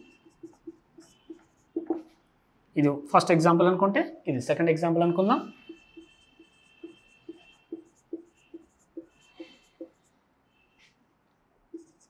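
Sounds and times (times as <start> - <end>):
marker squeaking on whiteboard: 0.0 - 2.2, 5.4 - 11.0, 11.7 - 12.0.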